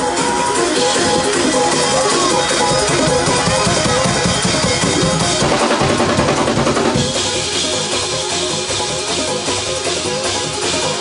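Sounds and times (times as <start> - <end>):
church band playing gospel groove: 0.0 - 11.0
drum kit bass drum and snare: 0.0 - 11.0.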